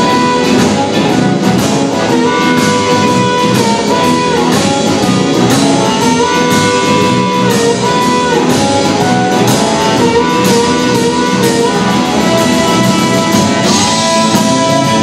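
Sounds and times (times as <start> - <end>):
amplified harmonica: 0.0 - 15.0
blues band playing: 0.0 - 15.0.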